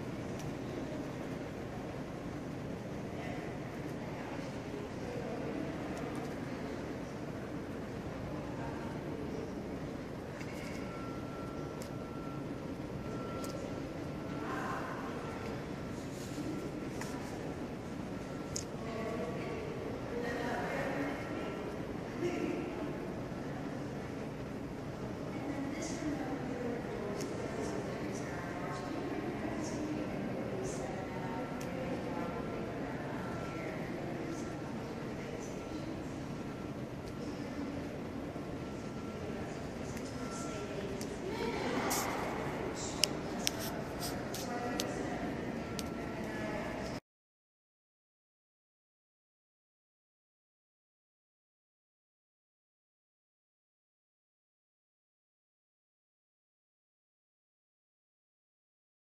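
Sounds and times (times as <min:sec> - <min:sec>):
faint murmur of voices: 0:00.0 - 0:47.0
steady room noise: 0:00.0 - 0:47.0.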